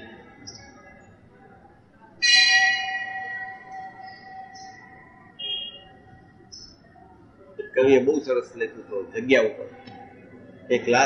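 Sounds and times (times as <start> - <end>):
faint high tones: 0.0 - 10.7
bell-like chime ringing: 2.2 - 5.8.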